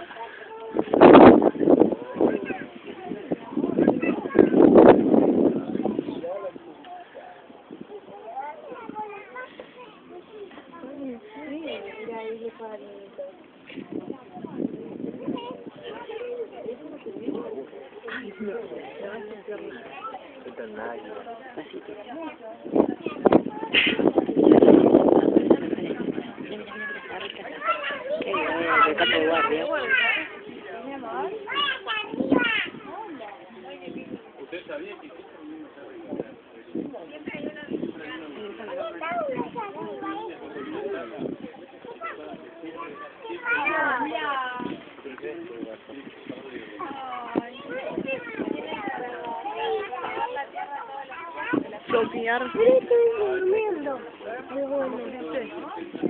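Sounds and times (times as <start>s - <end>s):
chatter of voices: 0.0s - 56.0s.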